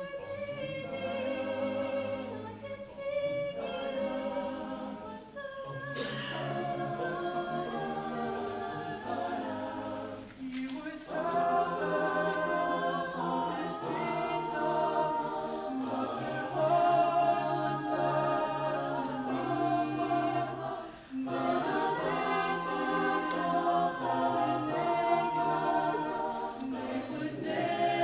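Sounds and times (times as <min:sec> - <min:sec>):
choir singing a cappella: 0:00.0 - 0:28.0.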